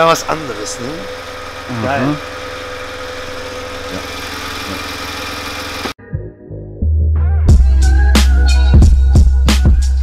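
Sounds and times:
car engine idling: 0:00.0 - 0:06.0.

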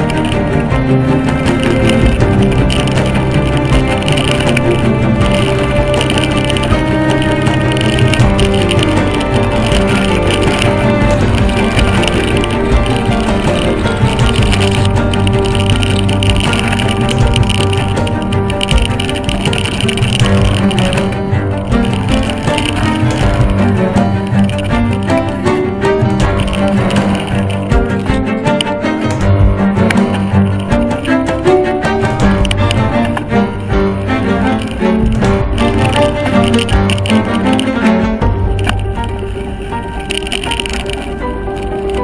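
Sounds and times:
background music with low bass: 0:00.0 - 0:42.0.

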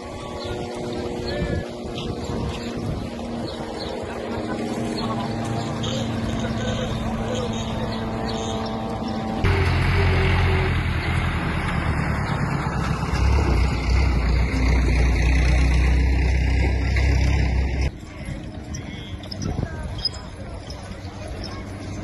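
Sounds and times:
passing van engine hum: 0:00.0 - 0:18.0
tractor engine running: 0:00.0 - 0:22.0.

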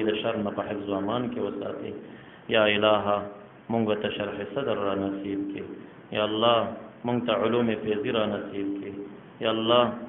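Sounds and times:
man praying: 0:00.0 - 0:10.0.

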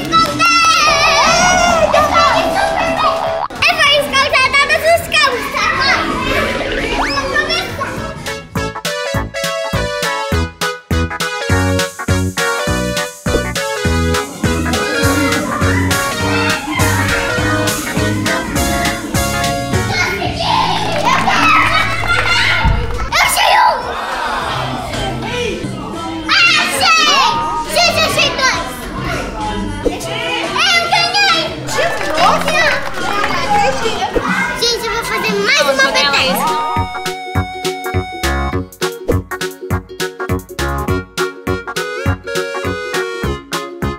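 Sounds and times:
children talking excitedly: 0:00.0 - 0:08.6, 0:14.2 - 0:37.2
background music: 0:00.1 - 0:03.7, 0:06.2 - 0:43.9
children squealing: 0:00.6 - 0:03.5, 0:20.3 - 0:24.0
background music with beat: 0:36.3 - 0:43.9.

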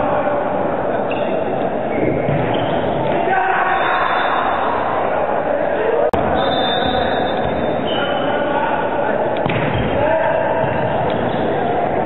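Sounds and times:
chatter and shouting: 0:03.0 - 0:12.0.

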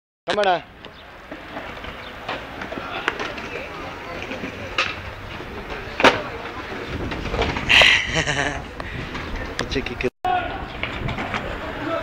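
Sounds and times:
skateboard clicks: 0:00.3 - 0:07.9
skateboard wheels rolling on concrete: 0:00.3 - 0:12.0.

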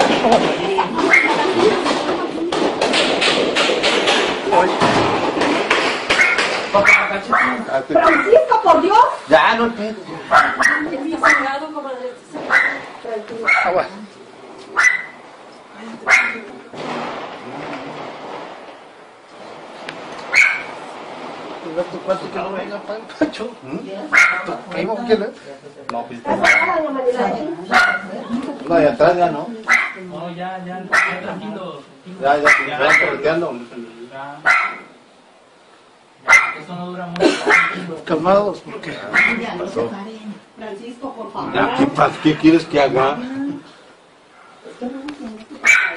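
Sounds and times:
soft steady noise: 0:00.0 - 0:45.9
dog barking: 0:01.0 - 0:01.4, 0:06.1 - 0:08.5, 0:10.3 - 0:11.6, 0:12.5 - 0:13.8, 0:14.8 - 0:15.2, 0:16.1 - 0:16.5, 0:20.3 - 0:20.8, 0:24.1 - 0:24.6, 0:26.4 - 0:26.8, 0:27.7 - 0:28.2, 0:29.7 - 0:30.0, 0:30.9 - 0:31.3, 0:32.4 - 0:33.2, 0:34.4 - 0:34.9, 0:36.3 - 0:36.7, 0:37.5 - 0:37.8, 0:39.1 - 0:39.5, 0:45.6 - 0:45.9.

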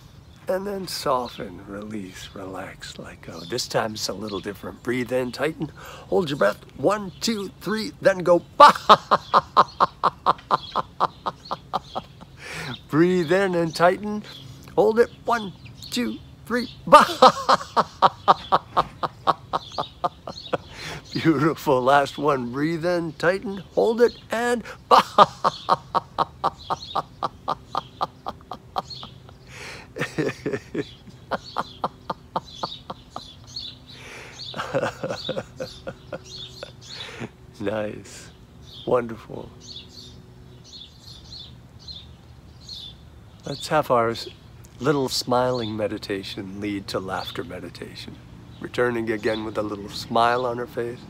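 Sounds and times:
man laughing heartily: 0:08.5 - 0:12.9, 0:16.8 - 0:21.6, 0:24.4 - 0:37.4.

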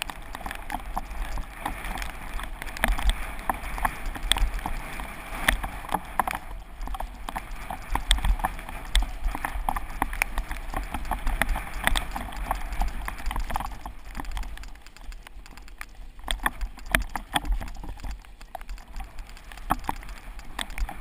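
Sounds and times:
wind rumble on microphone: 0:00.0 - 0:15.1, 0:15.8 - 0:21.0
bike rattling over bumps: 0:00.0 - 0:21.0.

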